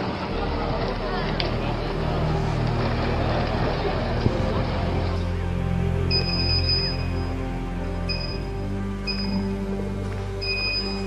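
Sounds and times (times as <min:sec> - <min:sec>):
people talking: 0:00.0 - 0:05.5
engine humming: 0:00.0 - 0:11.0.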